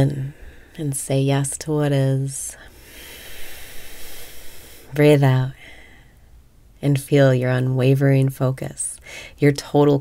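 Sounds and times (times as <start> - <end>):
woman speaking: 0.0 - 2.7, 4.9 - 5.8, 6.8 - 10.0
woman breathing in through nose: 2.6 - 4.9, 9.0 - 9.4.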